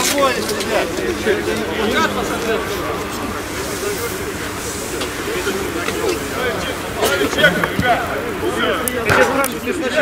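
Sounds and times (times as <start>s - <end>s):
players talking and calling out: 0.0s - 10.0s.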